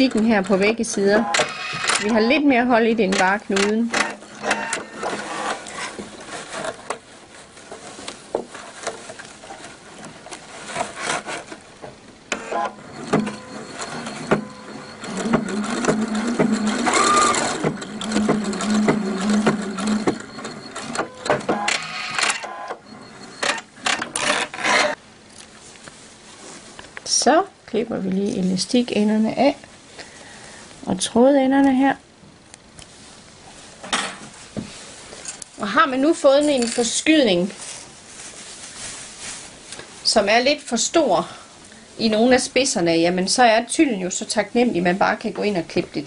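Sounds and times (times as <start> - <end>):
sewing machine stitching: 0.0 - 2.4, 3.1 - 6.0, 12.3 - 25.0.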